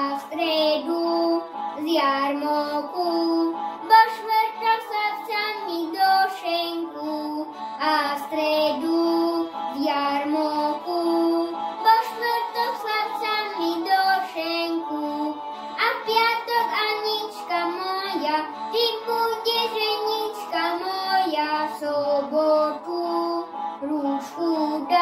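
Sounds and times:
boy singing folk song: 0.0 - 25.0.

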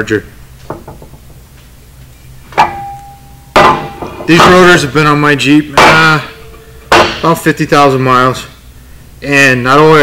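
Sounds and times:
metallic ringing tone: 2.5 - 7.5.

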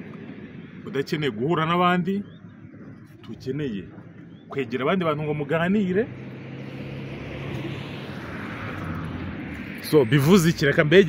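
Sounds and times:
car driving past: 5.4 - 11.0.

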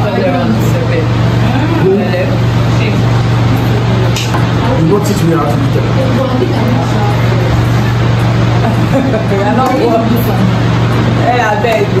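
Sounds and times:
indistinct talking: 0.0 - 12.0
steady low hum: 0.0 - 12.0.

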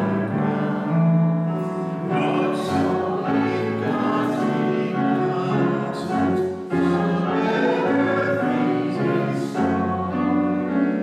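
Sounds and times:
instrumental accompaniment: 0.0 - 11.0
voices singing a hymn: 0.0 - 11.0.

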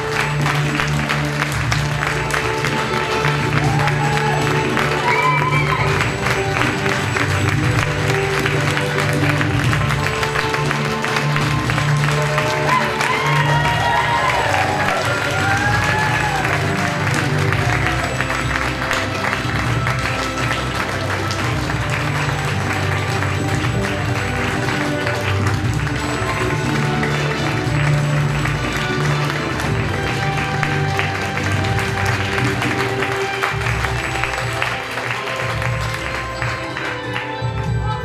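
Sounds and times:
audience applauding: 0.0 - 38.0
music playing: 0.0 - 38.0.

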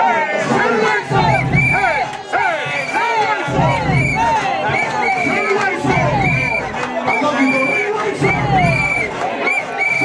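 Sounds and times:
party crowd cheering and shouting: 0.0 - 10.0.

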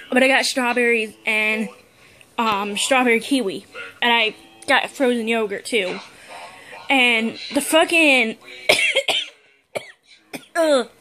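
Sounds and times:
woman coughing: 8.7 - 10.7.

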